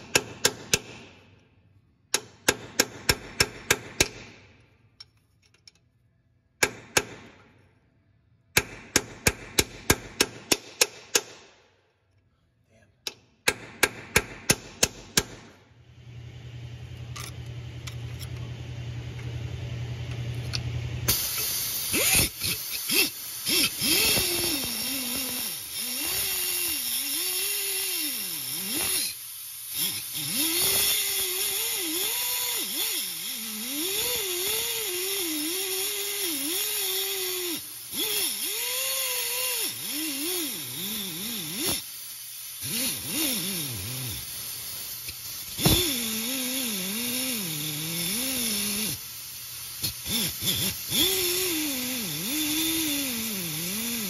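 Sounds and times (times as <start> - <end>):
hammer striking chisel: 0.0 - 1.0, 2.1 - 4.3, 6.6 - 7.5
air cutting tool grinding: 21.1 - 54.0.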